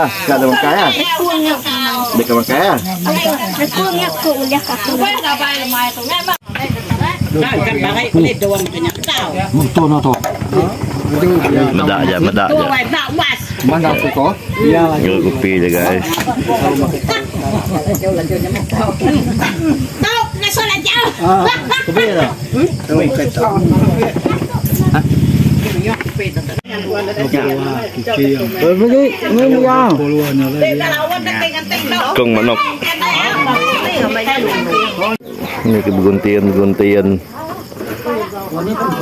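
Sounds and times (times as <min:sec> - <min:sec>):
people talking over each other: 0:00.0 - 0:39.0.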